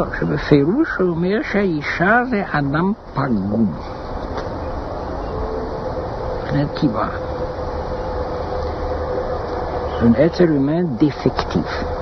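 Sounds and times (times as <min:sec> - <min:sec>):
faint constant hum: 0:00.0 - 0:12.0.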